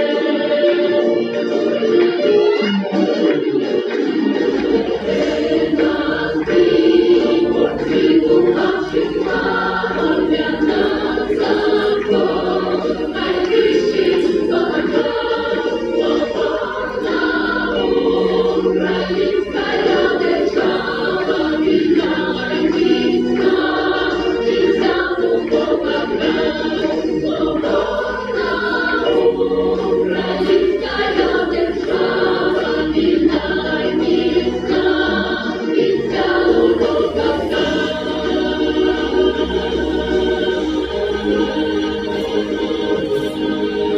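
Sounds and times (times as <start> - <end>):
choir singing a hymn: 0.0 - 43.9.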